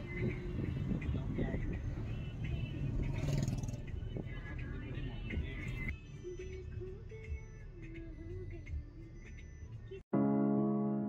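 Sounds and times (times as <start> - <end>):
car road and engine rumble: 0.0 - 10.1.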